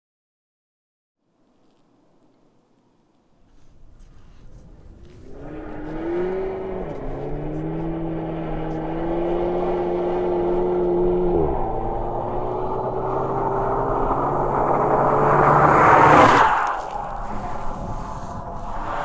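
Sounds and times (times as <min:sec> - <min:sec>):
car engine accelerating hard: 0:05.0 - 0:19.0
tyres hissing on snow: 0:16.4 - 0:19.0.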